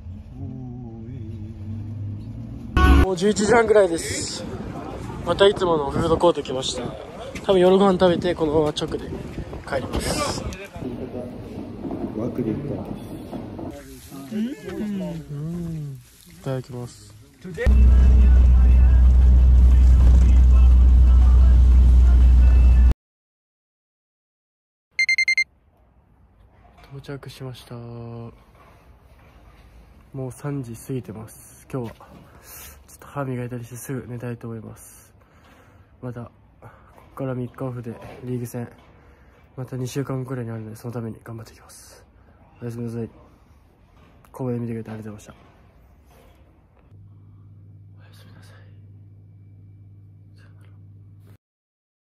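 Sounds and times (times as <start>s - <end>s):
bus engine rumble: 0.0s - 5.5s, 9.4s - 22.9s
road noise: 0.0s - 7.7s
long wavering vocal sound: 0.1s - 2.0s
high electronic beeps: 25.0s - 25.4s.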